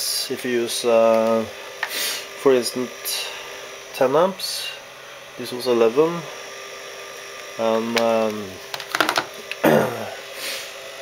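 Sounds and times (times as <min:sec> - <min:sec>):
person humming: 0:09.6 - 0:10.2.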